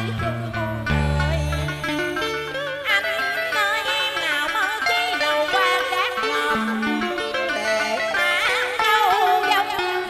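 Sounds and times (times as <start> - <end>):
plucked-string accompaniment: 0.0 - 10.0
woman singing with vibrato: 0.0 - 10.0.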